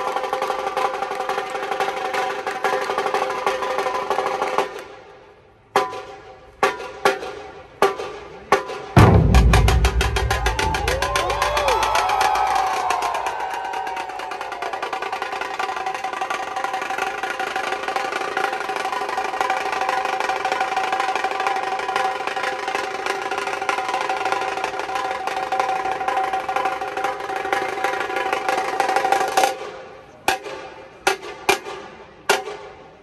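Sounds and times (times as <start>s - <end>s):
deep drum beats: 9.0s - 13.1s
fast drum roll: 9.0s - 14.5s.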